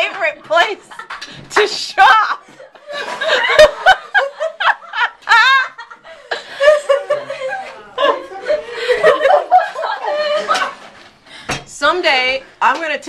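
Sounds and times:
people laughing: 2.0 - 11.0.

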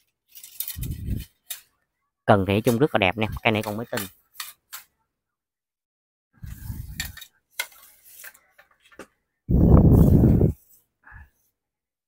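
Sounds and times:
muffled rubbing: 9.5 - 10.7.

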